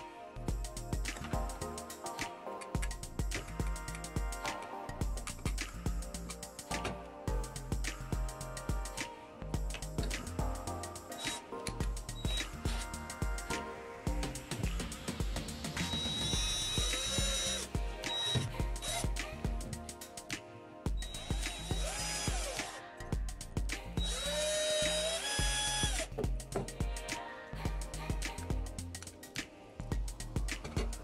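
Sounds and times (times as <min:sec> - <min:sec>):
background music with steady beat: 0:00.0 - 0:31.0
cordless drill whining: 0:15.9 - 0:19.0, 0:21.1 - 0:22.8, 0:24.0 - 0:26.1
drill bit boring through plastic: 0:16.0 - 0:19.0, 0:21.2 - 0:22.6, 0:24.0 - 0:26.1.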